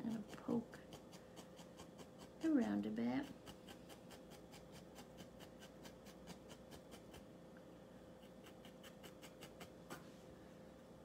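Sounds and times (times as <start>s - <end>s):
felting needle poking wool: 0.0s - 7.3s.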